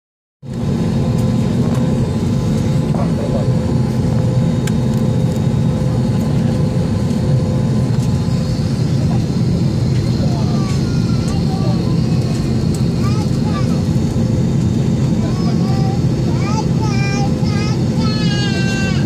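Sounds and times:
airplane cabin low hum: 0.5s - 19.0s
faint passenger voices: 0.6s - 19.0s.

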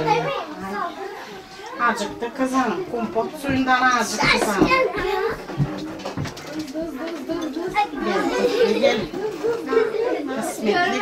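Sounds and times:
people talking: 1.7s - 11.0s.

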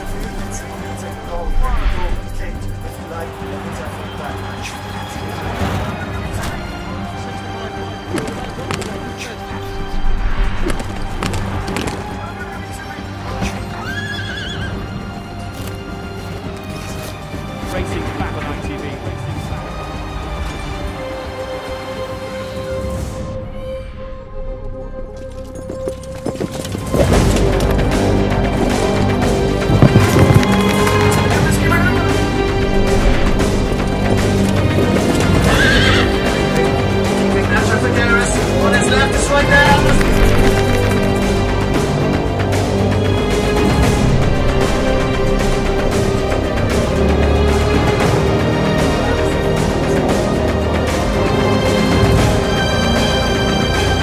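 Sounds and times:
background music: 0.0s - 54.0s
horse whinnying: 13.4s - 14.9s, 35.3s - 36.3s
galloping hoofbeats: 25.2s - 31.5s.

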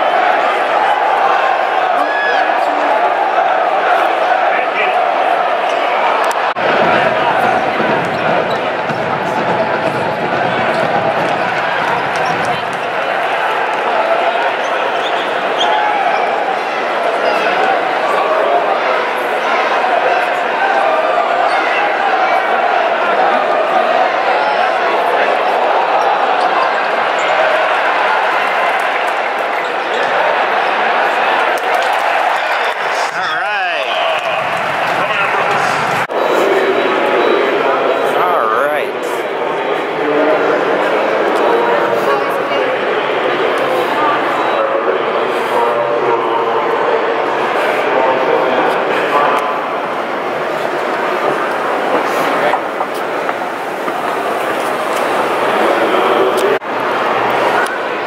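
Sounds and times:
crowd chatter: 0.0s - 58.0s.

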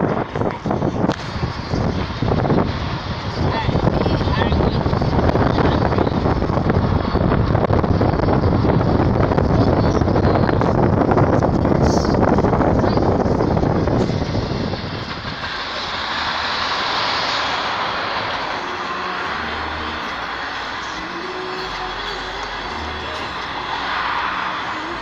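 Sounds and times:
car road and wind noise: 0.0s - 25.0s.

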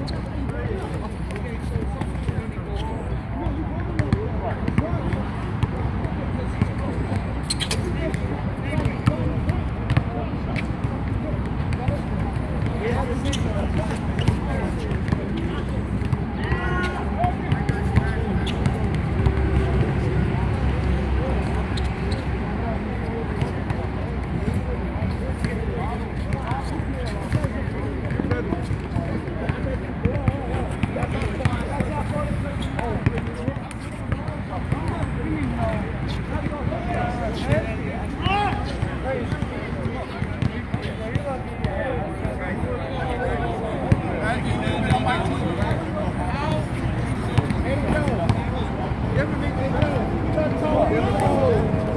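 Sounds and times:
players calling and chatting: 0.0s - 51.9s.

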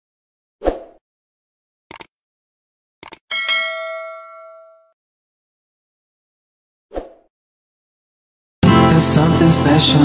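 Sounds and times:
cursor clicks: 1.9s - 2.1s, 3.0s - 3.2s
bell ding: 3.3s - 5.0s.

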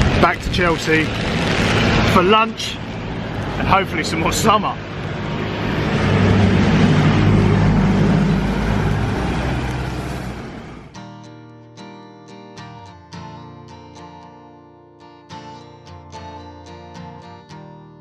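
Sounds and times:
acoustic guitar music: 0.0s - 5.4s, 6.9s - 18.0s
vehicle passing on wet road: 0.0s - 11.0s.

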